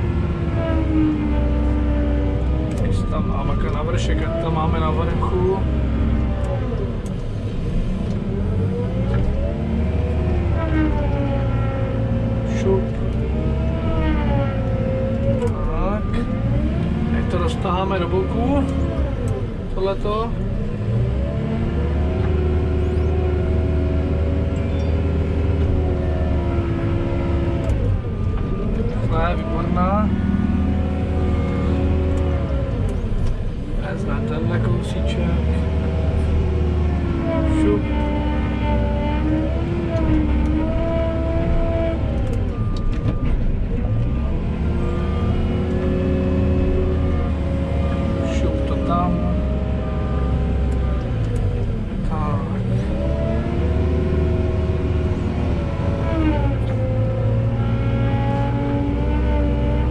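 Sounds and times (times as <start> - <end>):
diesel engine revving: 0.0 - 59.9.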